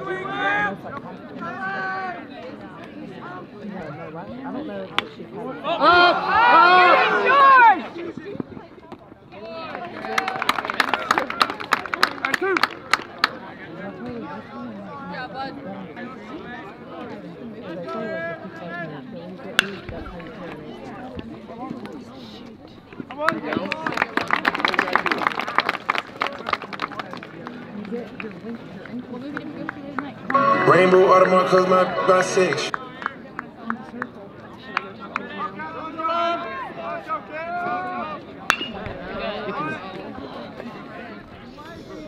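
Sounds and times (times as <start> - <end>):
people shouting and chattering: 0.0 - 10.4, 13.5 - 23.8, 27.4 - 42.0
bat hitting baseball: 19.6 - 20.1, 38.5 - 39.0
spectators calling out: 30.3 - 32.7.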